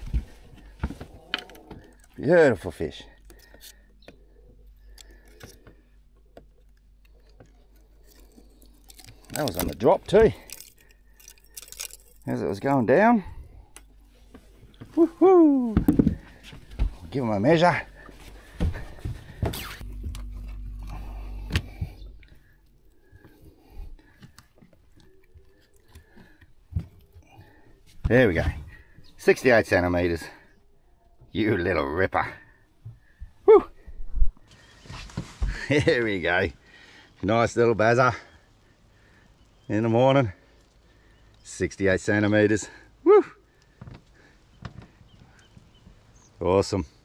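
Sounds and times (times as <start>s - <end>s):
steady low hum: 0.0s - 29.7s
man whooing in delight: 15.0s - 15.8s.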